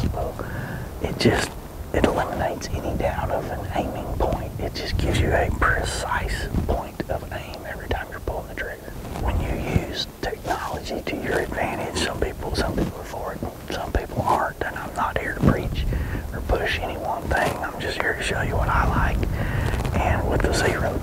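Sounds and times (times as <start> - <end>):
man whispering: 0.0 - 21.0.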